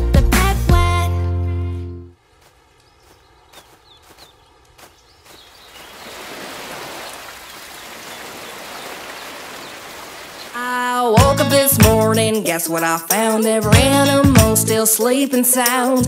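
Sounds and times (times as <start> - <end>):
music: 0.0 - 2.2, 11.0 - 16.0.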